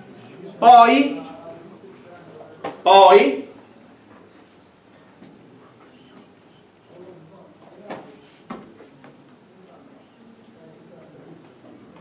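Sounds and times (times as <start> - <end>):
faint murmuring voices: 0.0 - 12.0.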